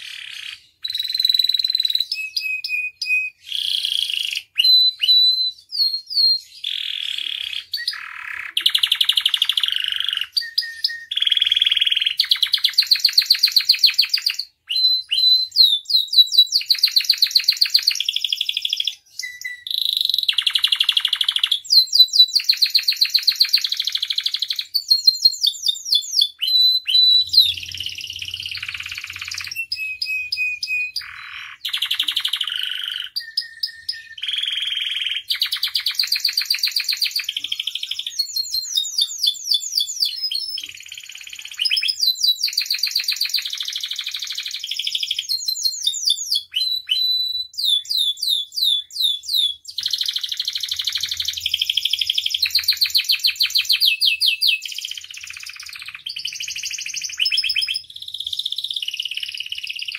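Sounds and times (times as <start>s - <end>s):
canary singing trills: 0.0s - 59.9s.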